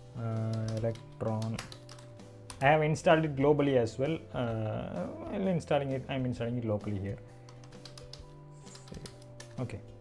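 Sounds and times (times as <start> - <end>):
soft background music: 0.0 - 10.0
keyboard keys clicking: 0.4 - 2.7, 7.4 - 9.7.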